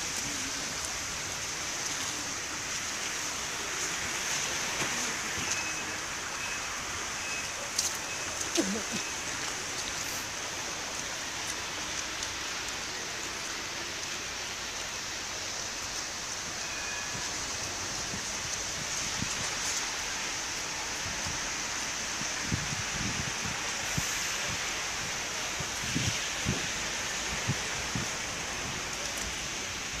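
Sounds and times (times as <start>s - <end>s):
outdoor ambience hiss: 0.0s - 30.0s.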